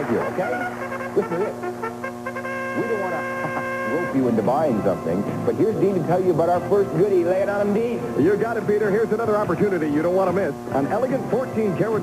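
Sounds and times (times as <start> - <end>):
low steady hum: 0.0 - 12.0
steady electronic tone: 0.0 - 12.0.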